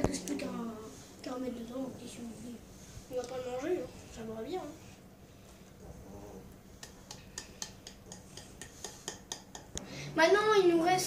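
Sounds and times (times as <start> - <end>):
hand tapping ceramic bowl: 6.8 - 9.7.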